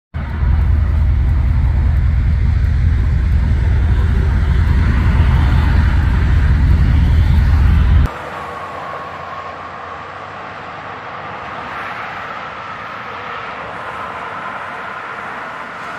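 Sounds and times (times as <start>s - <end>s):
distant traffic hiss: 0.2s - 15.9s
nearby freeway traffic rumble: 0.2s - 15.9s.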